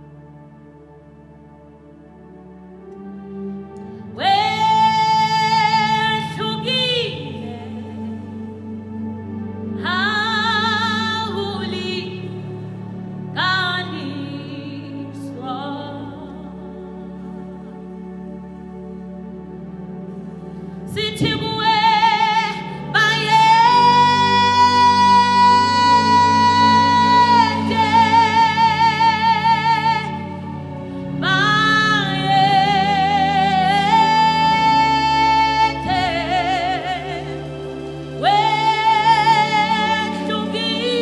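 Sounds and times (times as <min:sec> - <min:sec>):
soft sustained accompaniment: 0:00.0 - 0:41.0
woman singing with vibrato: 0:04.1 - 0:08.4, 0:09.8 - 0:12.7, 0:13.3 - 0:17.4, 0:20.9 - 0:41.0.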